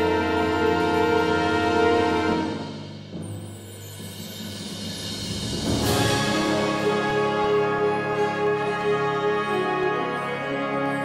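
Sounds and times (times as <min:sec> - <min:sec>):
wind band playing chords: 0:00.0 - 0:03.2, 0:05.2 - 0:11.0
low timpani roll: 0:00.0 - 0:10.8.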